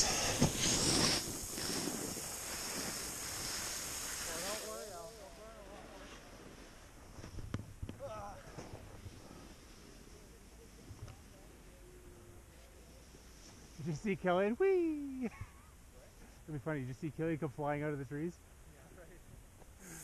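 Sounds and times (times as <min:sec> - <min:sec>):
snowboard scraping over snow: 0:00.0 - 0:10.8
people talking: 0:04.2 - 0:06.6, 0:07.9 - 0:08.9, 0:09.8 - 0:20.0.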